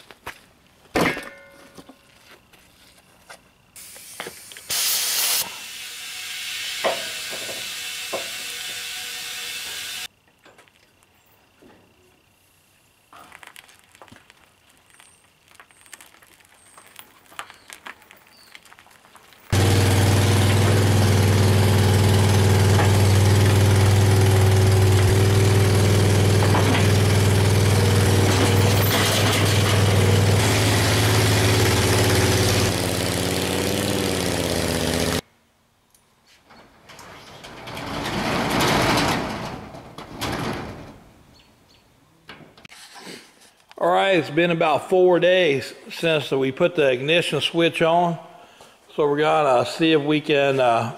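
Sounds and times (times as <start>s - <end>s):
tank engine running loudly: 19.6s - 35.2s.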